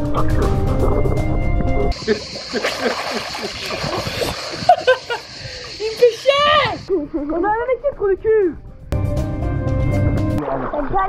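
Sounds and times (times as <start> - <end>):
pool water splashing: 1.9 - 7.4, 10.4 - 11.0
high excited voices calling: 2.0 - 6.9.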